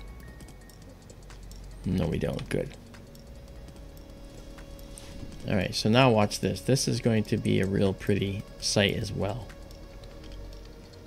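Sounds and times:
mouse and keyboard clicks: 0.0s - 1.7s.

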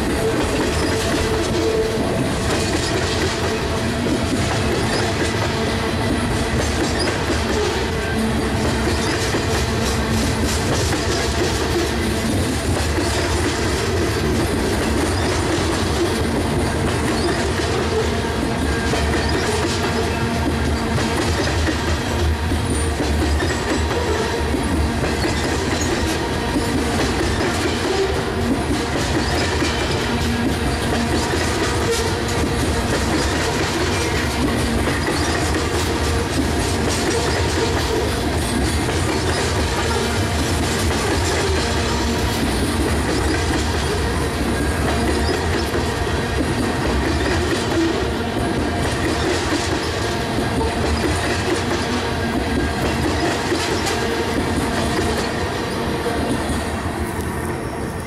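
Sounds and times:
steel train wheels rumbling on rail: 0.0s - 58.0s.

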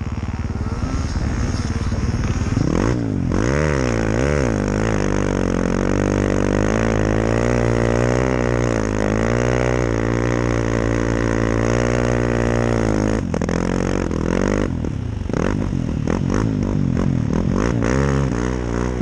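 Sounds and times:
snowmobile engine running: 0.0s - 19.0s.

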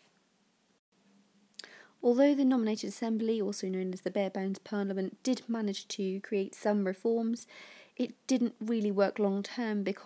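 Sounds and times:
woman breathing in: 1.6s - 2.0s, 7.5s - 8.0s.

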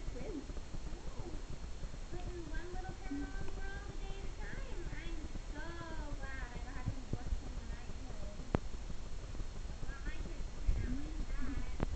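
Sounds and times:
low background rumble: 0.0s - 11.9s.

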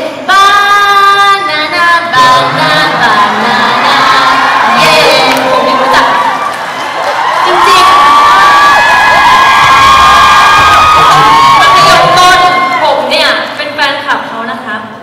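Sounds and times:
fans screaming and cheering: 3.0s - 13.1s.

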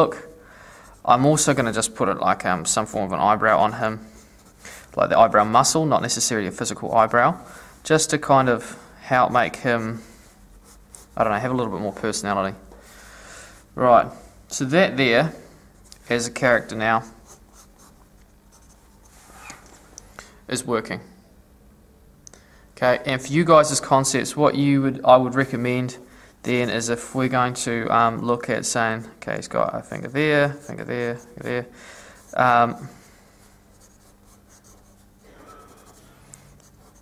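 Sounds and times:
scratchy strokes of drawing tool: 29.9s - 37.0s.

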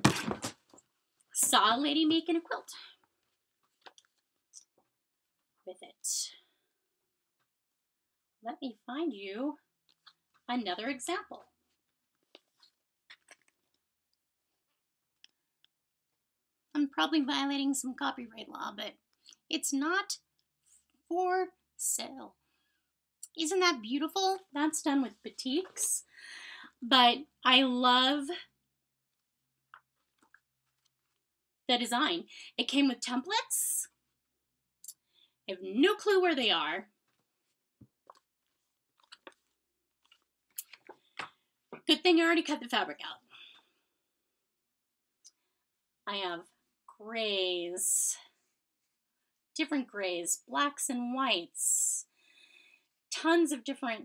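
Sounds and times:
paper pages rustling: 37.0s - 41.2s.

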